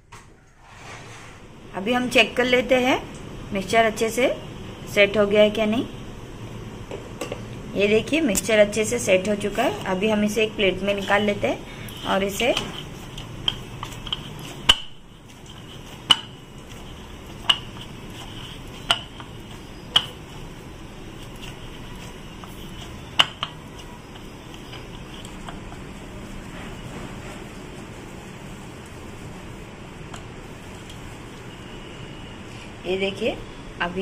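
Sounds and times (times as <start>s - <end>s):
steady low hiss: 1.3s - 34.0s.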